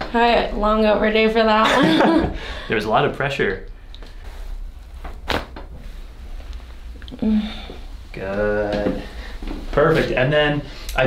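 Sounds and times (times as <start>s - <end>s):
neck joint cracking: 4.8s - 5.7s.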